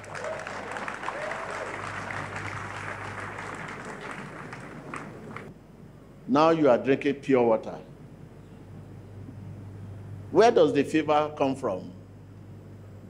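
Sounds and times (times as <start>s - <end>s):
congregation applauding: 0.0s - 5.5s
voices: 0.0s - 5.5s.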